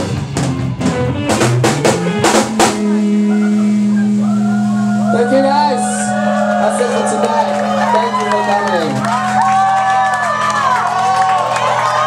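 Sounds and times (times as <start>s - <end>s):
drum hits: 0.0s - 3.3s
guitars and bass holding chord: 0.0s - 12.0s.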